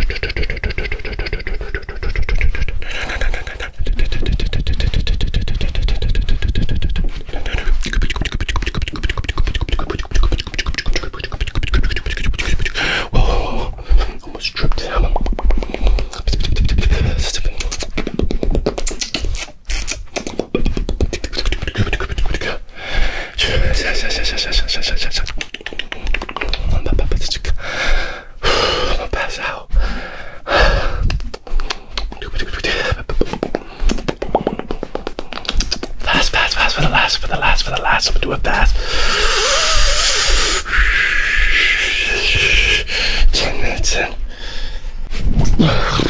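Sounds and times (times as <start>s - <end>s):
mouth clicks pops and smacks: 0.0s - 29.5s, 30.5s - 46.0s.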